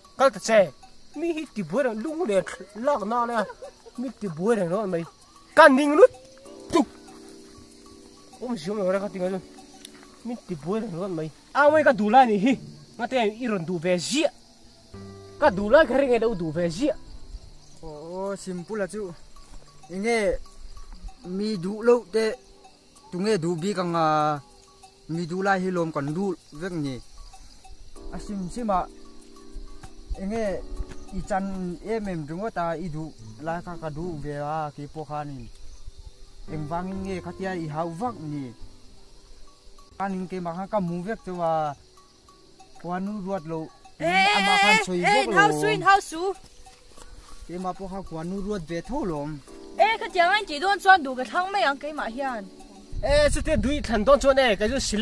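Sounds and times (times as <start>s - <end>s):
faint background music: 0.0s - 55.0s
man speaking: 10.2s - 14.3s, 42.8s - 46.0s.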